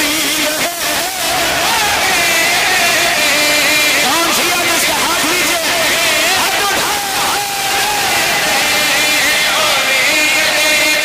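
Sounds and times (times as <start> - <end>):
crowd noise: 0.0 - 11.0
man singing over a loudspeaker: 0.0 - 11.0.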